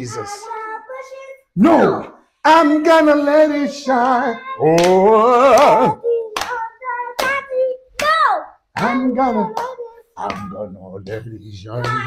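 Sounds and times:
hand claps: 4.8 - 8.2, 8.8 - 12.0.

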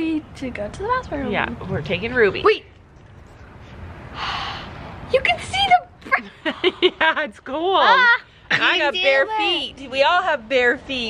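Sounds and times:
person exhaling breathily: 4.1 - 4.8.

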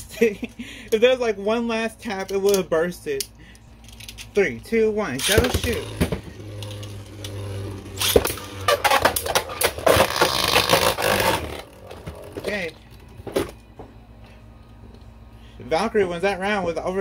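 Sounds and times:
spinning tops whirring: 5.0 - 12.5
spinning tops clacking and scraping: 5.2 - 12.4.

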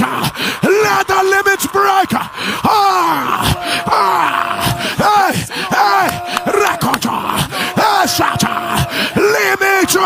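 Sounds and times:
man praying loudly: 0.0 - 10.0.

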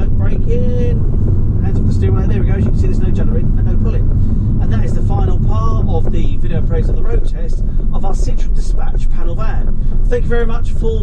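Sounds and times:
man talking: 0.0 - 11.0
van engine and road rumble: 0.0 - 11.0.

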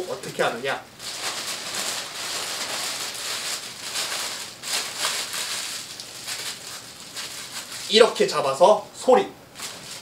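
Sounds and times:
plastic bag rustling: 1.0 - 8.4, 9.6 - 10.0.

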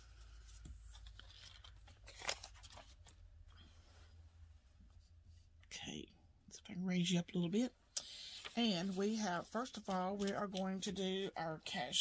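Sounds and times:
banknotes rustling: 0.0 - 3.6, 8.0 - 11.4.

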